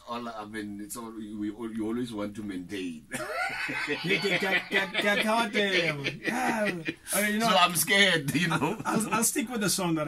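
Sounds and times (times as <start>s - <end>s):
man laughing: 3.1s - 9.3s
man speaking: 3.8s - 10.0s.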